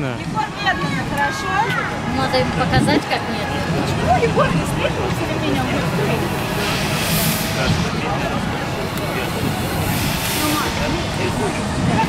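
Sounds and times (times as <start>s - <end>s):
distant voices: 0.0s - 12.0s
low machine hum: 2.0s - 12.0s
hissing noise bursts: 4.6s - 12.0s.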